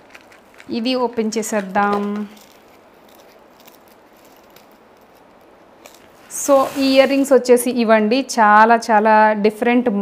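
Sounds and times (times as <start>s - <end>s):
light clicks of packaging: 0.0s - 0.8s
packaging rustling: 0.0s - 0.8s, 1.4s - 7.3s.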